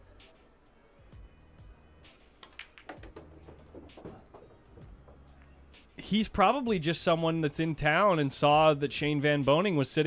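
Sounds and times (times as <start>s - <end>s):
billiard balls clacking: 2.4s - 5.5s.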